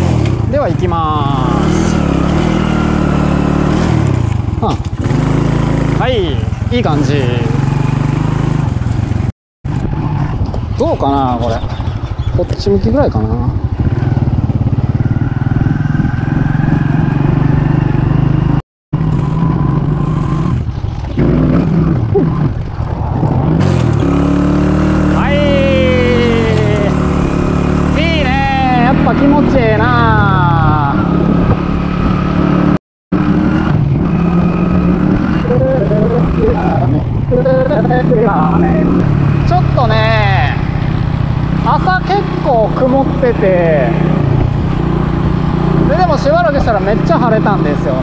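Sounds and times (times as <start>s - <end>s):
motorcycle engine revving: 0.0s - 48.0s.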